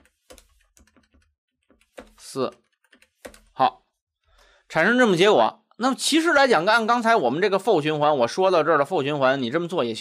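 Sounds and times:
faint keyboard typing: 0:00.0 - 0:03.6.

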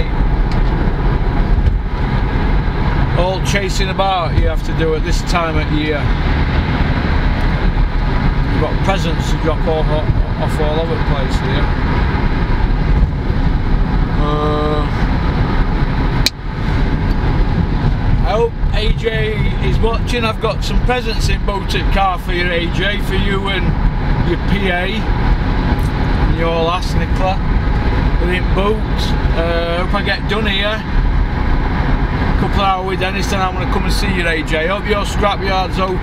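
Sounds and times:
car engine rumble: 0:00.0 - 0:36.0
road noise: 0:00.0 - 0:36.0
man's voice: 0:03.2 - 0:06.1, 0:08.6 - 0:11.7, 0:14.2 - 0:15.0, 0:18.2 - 0:25.1, 0:28.2 - 0:30.9, 0:32.4 - 0:36.0.

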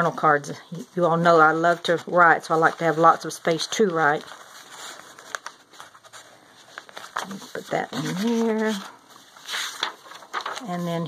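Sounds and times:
paper cards shuffling: 0:01.5 - 0:11.0.

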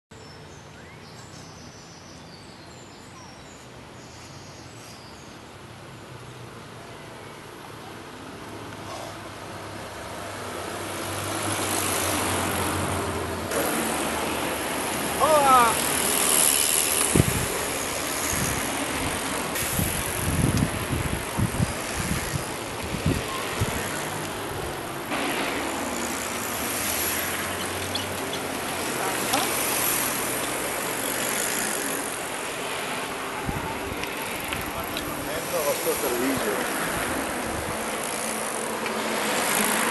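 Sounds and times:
bicycles riding past: 0:06.1 - 0:39.9
riders talking and calling out: 0:15.1 - 0:16.6, 0:27.7 - 0:31.8, 0:33.3 - 0:37.0.

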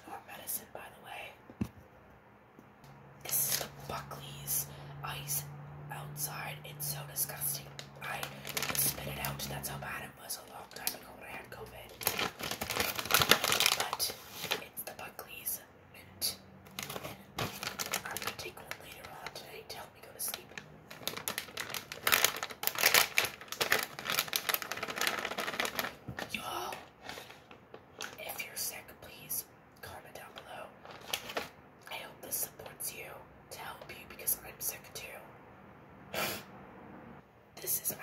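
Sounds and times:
person whispering: 0:00.0 - 0:01.4, 0:03.2 - 0:12.0, 0:13.6 - 0:16.4, 0:17.0 - 0:20.6, 0:26.2 - 0:27.0, 0:28.0 - 0:30.8, 0:31.9 - 0:35.3, 0:37.6 - 0:38.0
plastic package crinkling: 0:07.8 - 0:09.4, 0:11.8 - 0:14.7, 0:16.7 - 0:19.4, 0:20.3 - 0:28.3, 0:30.8 - 0:31.6.

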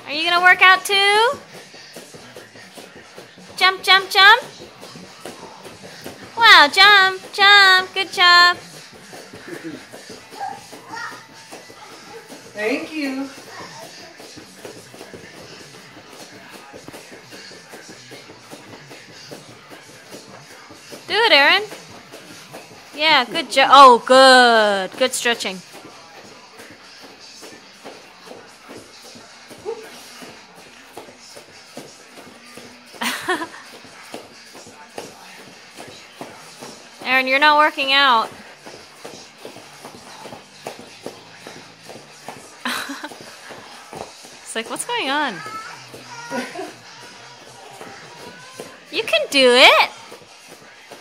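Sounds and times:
television speech: 0:00.0 - 0:38.5, 0:43.4 - 0:51.0
television music: 0:00.0 - 0:51.0
movement on foam mat: 0:00.2 - 0:51.0.

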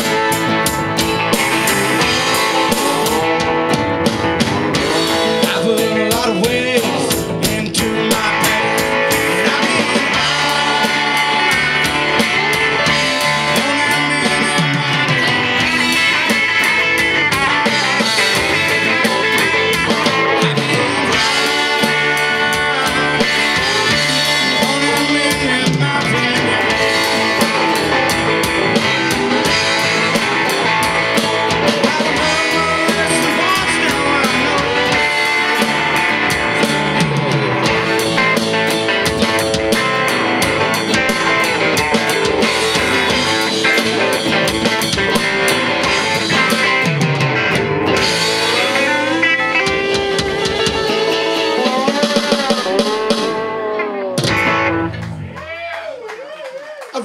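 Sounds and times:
rock band playing: 0:00.0 - 0:57.0.

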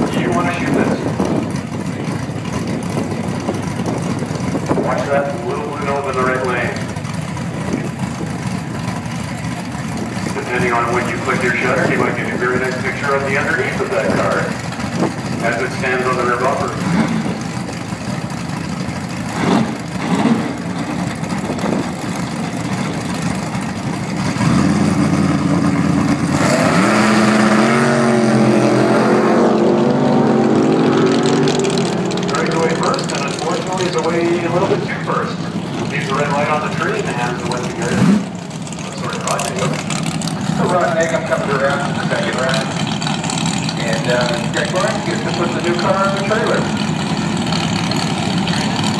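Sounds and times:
car engines idling: 0:00.0 - 0:48.9
drag car engines revving: 0:00.0 - 0:48.9.

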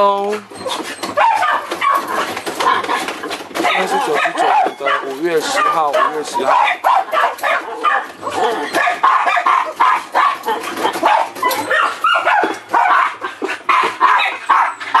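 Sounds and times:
dogs barking: 0:00.0 - 0:15.0.

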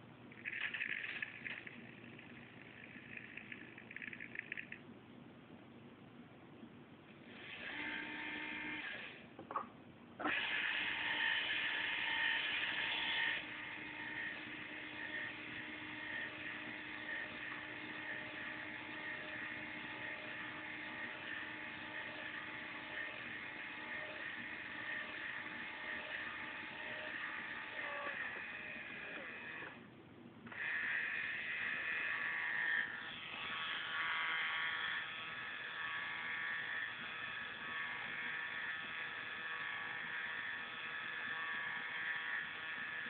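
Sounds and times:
small electric motors whining: 0:00.4 - 0:04.8, 0:07.3 - 0:09.2, 0:10.2 - 0:29.8, 0:30.5 - 0:43.0.

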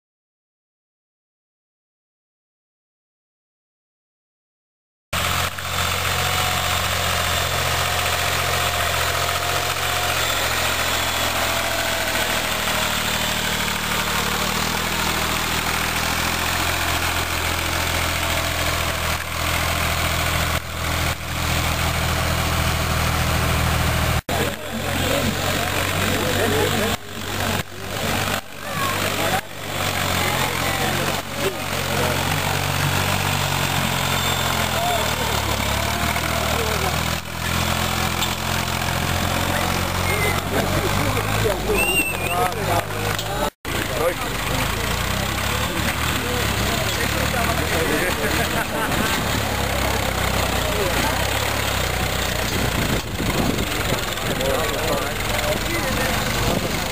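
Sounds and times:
tractor engine running: 0:05.2 - 0:56.9
crowd chatter: 0:05.4 - 0:56.9.

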